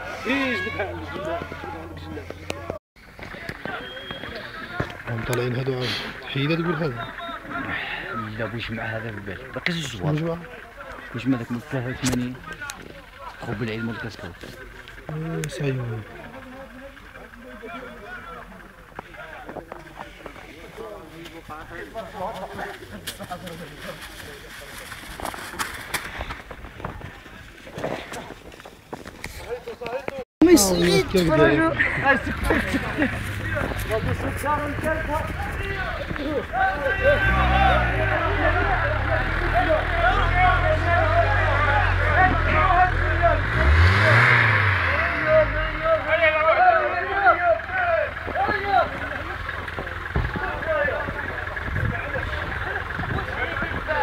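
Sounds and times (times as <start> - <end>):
people calling and chattering: 0.0 - 54.0
car engine idling and revving: 4.6 - 21.1, 30.6 - 54.0.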